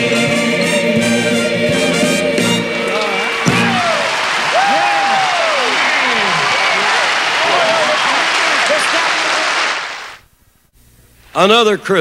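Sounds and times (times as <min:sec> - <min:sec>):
audience applauding: 0:02.8 - 0:10.2
shouted whoops: 0:02.9 - 0:09.4.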